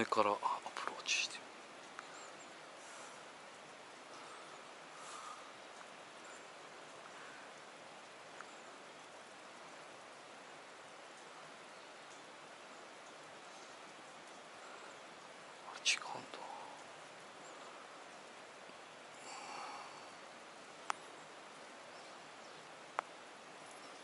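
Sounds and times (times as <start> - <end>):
outdoor background hiss: 0.0 - 24.0.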